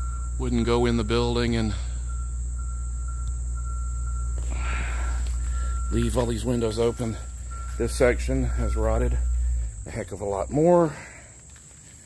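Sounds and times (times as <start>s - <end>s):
low rumble on microphone: 0.0s - 10.5s
insects droning: 0.0s - 12.0s.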